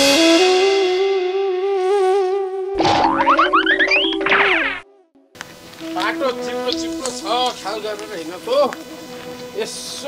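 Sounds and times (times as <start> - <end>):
held wavering instrumental note: 2.7 - 5.1
rising cartoon boing glides: 2.8 - 4.8.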